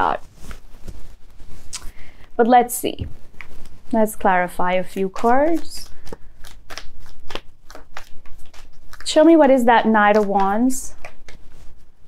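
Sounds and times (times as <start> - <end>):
cards shuffled by hand: 3.0 - 12.0.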